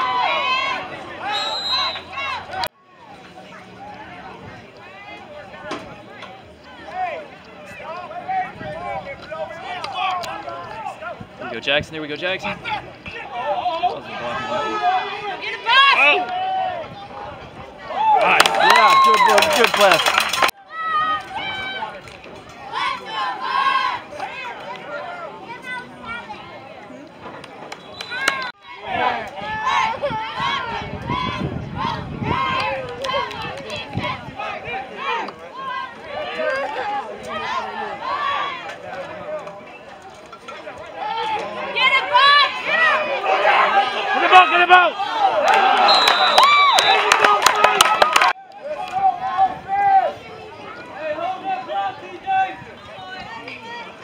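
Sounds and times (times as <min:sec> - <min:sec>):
crowd talking and shouting: 0:00.0 - 0:54.0.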